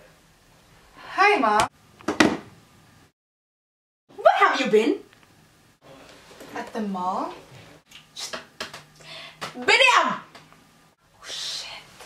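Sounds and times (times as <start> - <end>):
breathy whisper: 11.1 - 12.0.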